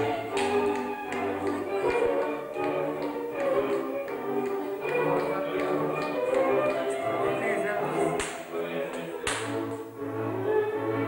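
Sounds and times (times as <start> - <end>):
folk dance music on strings: 0.0 - 11.0
hand slap: 0.3 - 7.0, 8.2 - 9.8.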